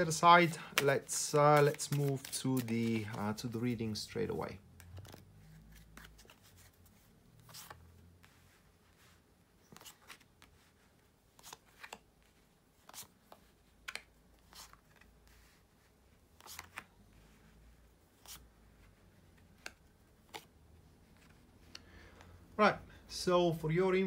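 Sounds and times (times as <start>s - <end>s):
cards dealt onto a towel: 0.0s - 4.0s, 16.4s - 17.3s.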